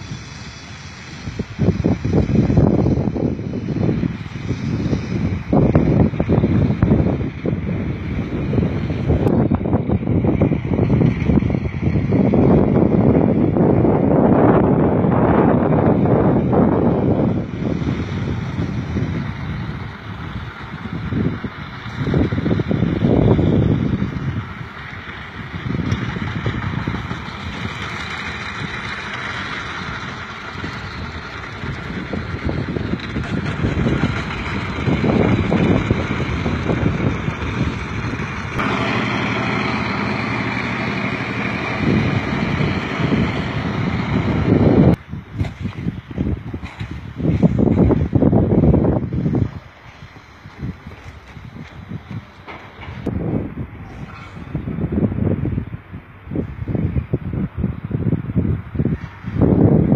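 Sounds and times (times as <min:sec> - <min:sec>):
outdoor hiss: 0:00.0 - 0:06.8
wind buffeting microphone: 0:00.0 - 0:59.9.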